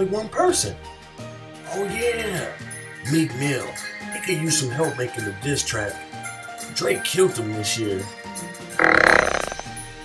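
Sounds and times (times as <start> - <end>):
background music: 0.0 - 10.0
loud burp: 8.8 - 9.7.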